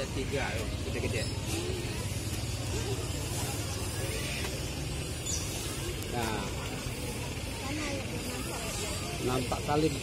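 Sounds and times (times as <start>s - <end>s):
people talking: 0.0s - 5.0s, 5.6s - 10.0s.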